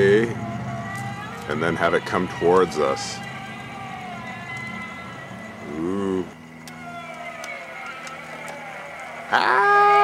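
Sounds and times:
steady low hum: 0.0 - 9.9
electric motors whining: 0.0 - 10.0.

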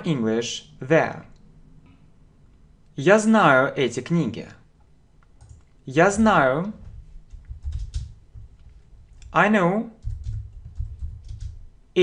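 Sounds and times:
computer keyboard typing: 5.2 - 9.4, 10.0 - 11.7.

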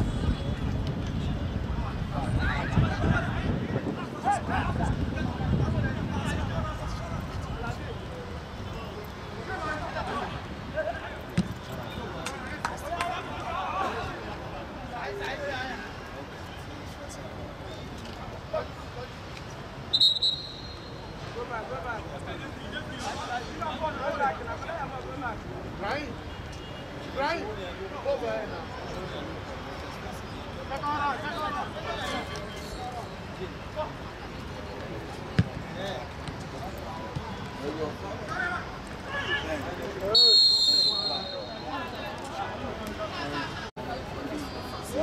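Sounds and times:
ball kick: 11.4 - 11.6, 35.4 - 35.6
referee's whistle trilling blast: 19.9 - 21.1, 40.1 - 41.9.

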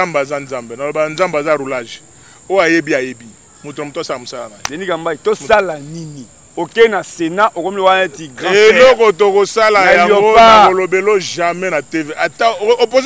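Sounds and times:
crickets chirring: 0.0 - 13.0
man talking: 0.0 - 13.0.

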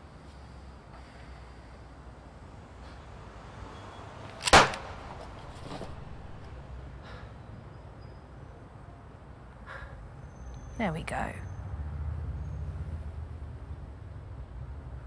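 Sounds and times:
low outdoor background noise: 0.0 - 15.0.

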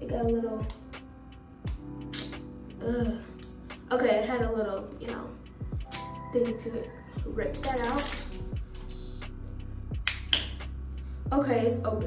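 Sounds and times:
music with low steady beat: 0.0 - 12.0.

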